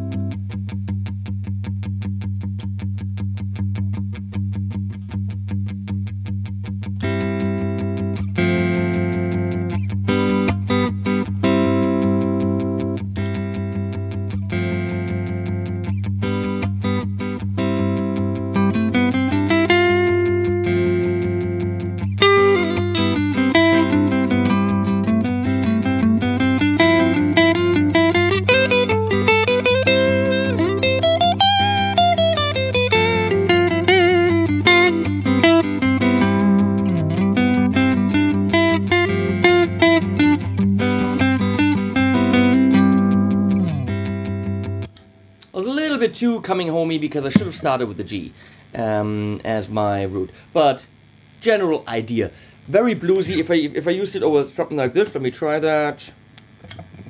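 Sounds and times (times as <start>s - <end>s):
electric guitar chords and lead: 0.0s - 45.6s, 56.2s - 57.0s
low bass note held: 47.3s - 47.7s.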